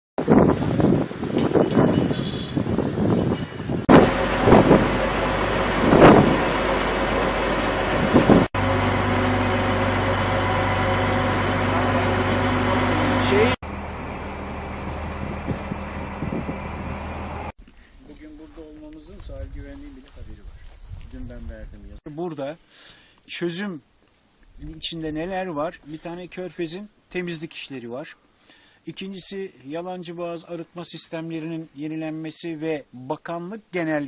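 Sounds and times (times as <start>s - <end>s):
wind buffeting microphone: 0.2s - 8.5s, 14.6s - 17.5s, 18.7s - 22.0s
boat engine running: 3.9s - 17.5s
low steady rumble: 3.9s - 17.5s
voices: 11.5s - 13.6s.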